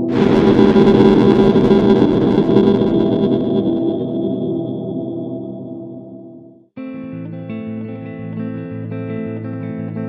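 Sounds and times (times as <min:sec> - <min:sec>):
distorted crash: 0:00.0 - 0:06.7
low drone: 0:00.0 - 0:06.7.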